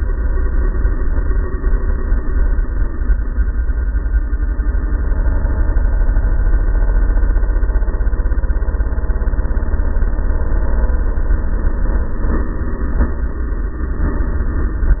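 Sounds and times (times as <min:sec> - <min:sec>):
dirt bike engine running: 0:00.0 - 0:15.0.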